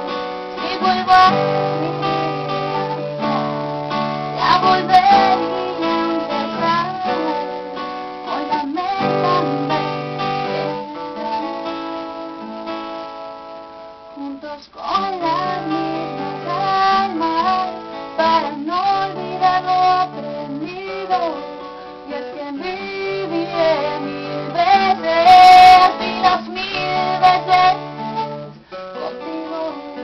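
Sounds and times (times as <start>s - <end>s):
woman singing: 0.0s - 13.0s, 14.0s - 30.0s
acoustic guitar strumming: 0.0s - 30.0s.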